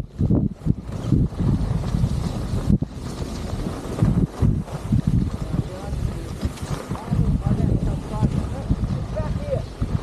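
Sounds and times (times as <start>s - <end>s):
skis sliding over snow: 0.0s - 10.0s
wind buffeting microphone: 0.0s - 10.0s.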